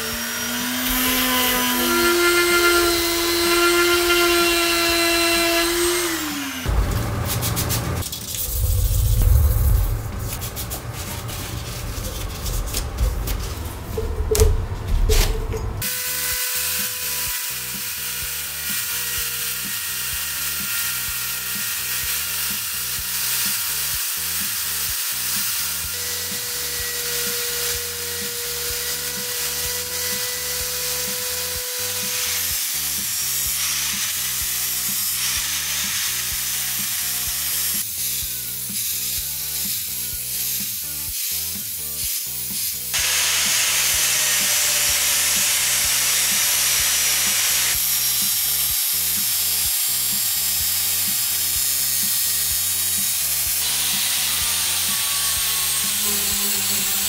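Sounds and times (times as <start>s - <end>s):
power drill buffing metal: 0.0s - 8.7s, 15.8s - 38.3s, 43.0s - 57.0s
angle grinder sanding wood: 0.0s - 14.3s, 15.0s - 57.0s.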